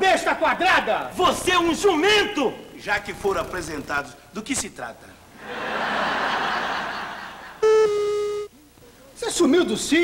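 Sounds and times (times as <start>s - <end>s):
audience laughter: 5.4s - 7.6s
loud electronic beep: 7.6s - 8.5s.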